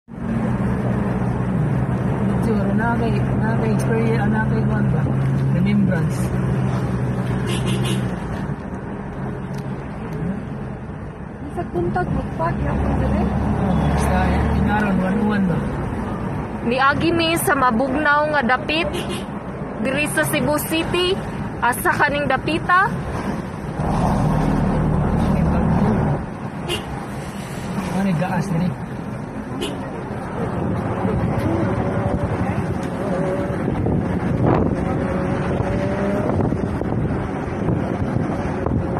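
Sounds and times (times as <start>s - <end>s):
car engine: 0.0s - 38.9s
road noise: 0.0s - 38.9s
car engine and tyre drone: 22.4s - 38.9s.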